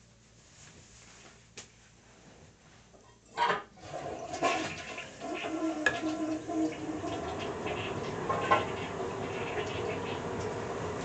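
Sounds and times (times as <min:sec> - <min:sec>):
toilet flushing: 0:03.3 - 0:11.0
water running: 0:03.3 - 0:11.0.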